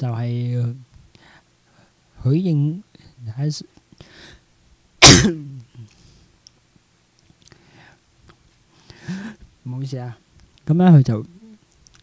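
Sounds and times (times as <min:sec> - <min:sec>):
faint breath in: 0:04.0 - 0:04.5, 0:07.5 - 0:08.1, 0:08.7 - 0:09.5
man coughing: 0:05.0 - 0:05.5.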